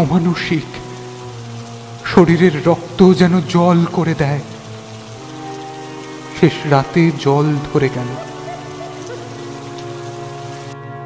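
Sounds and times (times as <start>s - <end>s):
rain: 0.0s - 11.0s
music drone: 4.4s - 11.0s.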